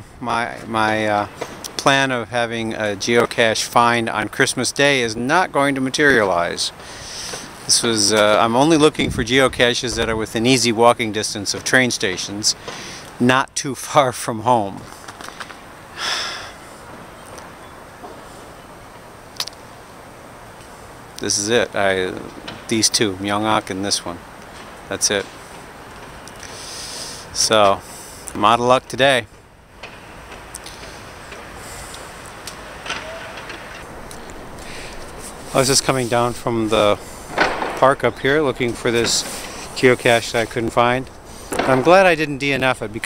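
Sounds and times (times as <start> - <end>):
city background noise: 0.0 - 43.0
outdoor background noise: 0.0 - 43.0
person sniffing: 6.8 - 7.6, 12.6 - 13.1, 16.0 - 16.6, 26.4 - 28.3
sharp click: 19.4 - 19.6.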